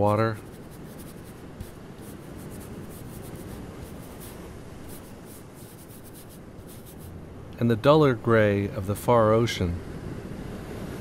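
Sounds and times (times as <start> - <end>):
paintbrush scratching on paper: 0.0 - 7.2.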